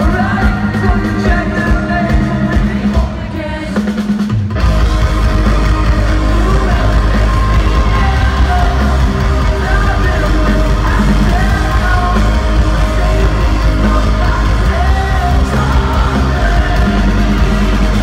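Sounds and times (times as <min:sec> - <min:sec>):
loud live rock band: 0:00.0 - 0:18.0.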